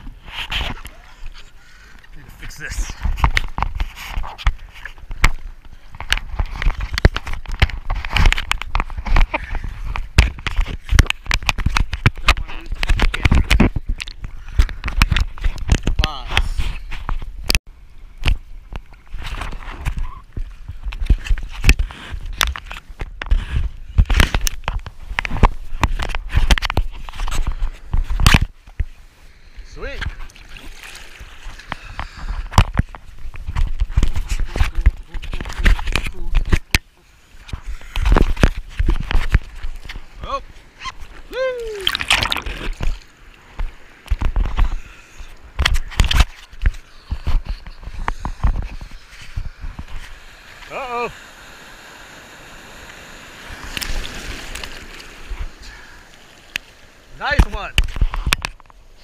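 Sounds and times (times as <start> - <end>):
water buffeting microphone: 24.8 - 59.0
water sloshing against surfboard: 30.0 - 59.0.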